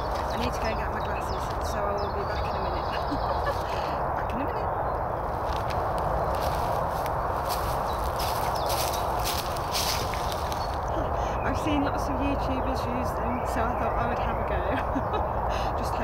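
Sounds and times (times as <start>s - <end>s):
rustling in dry leaves: 0.0s - 11.6s.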